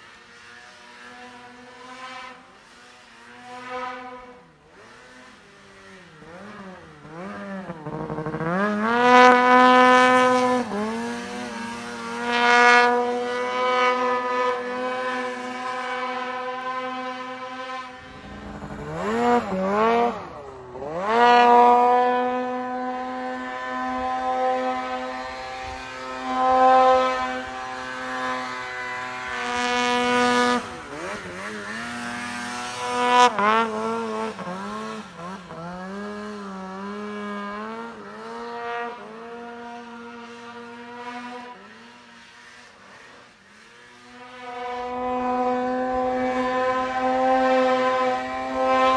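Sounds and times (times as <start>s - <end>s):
snowmobile engine revving: 0.0s - 48.9s.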